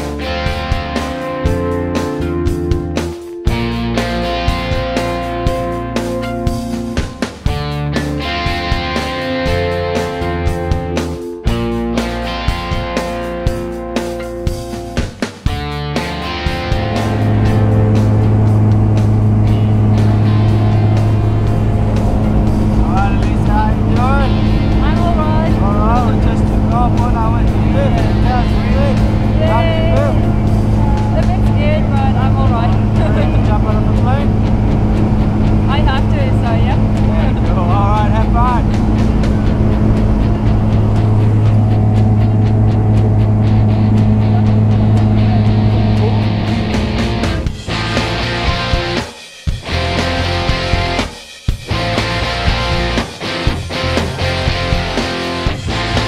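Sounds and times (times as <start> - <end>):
plane engine and propeller drone: 16.7 - 47.6
raised voices: 22.8 - 34.4.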